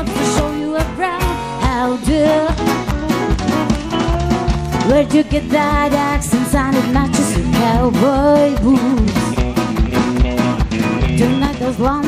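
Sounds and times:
drum kit beat: 0.0 - 12.0
live country-rock band: 0.0 - 12.0.

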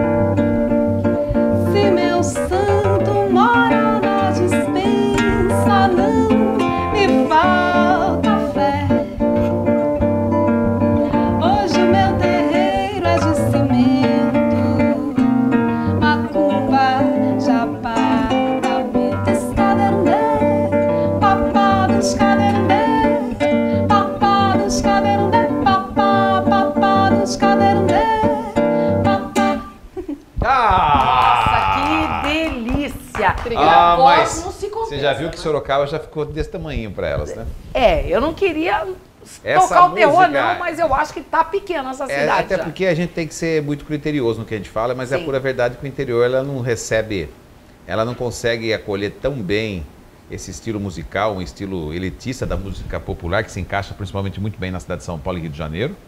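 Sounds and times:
classical guitar plucked and strummed: 0.0 - 29.8
woman singing: 1.5 - 9.7, 11.0 - 30.0, 39.6 - 42.4.

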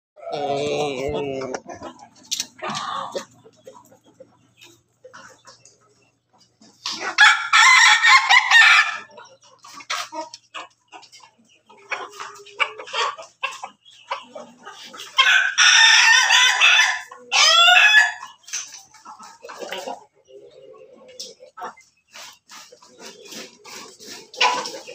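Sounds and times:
hens clucking: 0.2 - 24.9
roosters crowing: 7.0 - 9.1, 15.1 - 18.4.

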